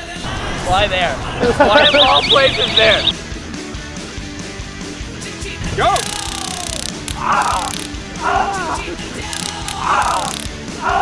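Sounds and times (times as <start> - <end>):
background music: 1.4 - 11.0.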